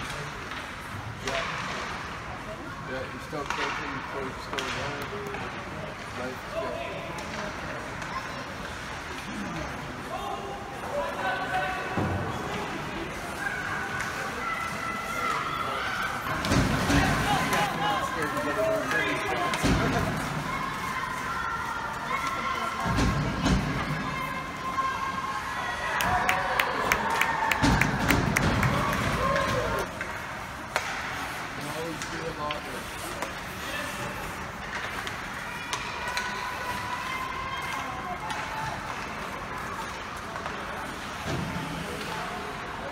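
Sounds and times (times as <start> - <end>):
spectators clapping: 25.9 - 29.9.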